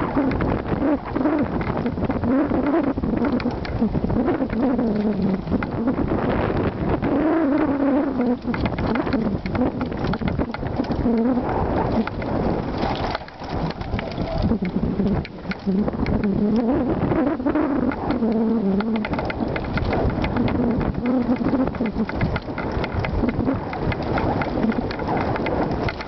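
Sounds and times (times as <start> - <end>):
bike rattling on rough trail: 0.0 - 26.0.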